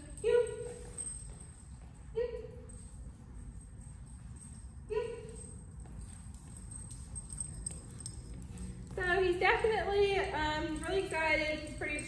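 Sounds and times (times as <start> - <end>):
low room hum: 0.0 - 12.0
dog clicking footsteps on concrete: 5.4 - 12.0
person walking on concrete: 5.4 - 12.0.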